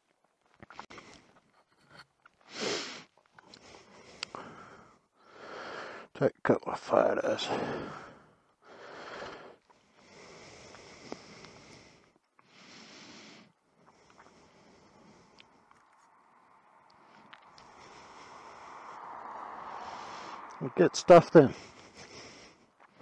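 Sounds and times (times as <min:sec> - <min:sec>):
faint background noise: 0:00.0 - 0:23.0
car passing: 0:14.1 - 0:23.0.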